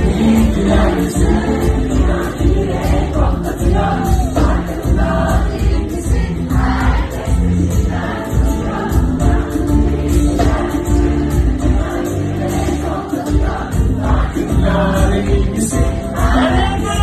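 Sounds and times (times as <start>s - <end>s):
live pop band with singing: 0.0s - 17.0s.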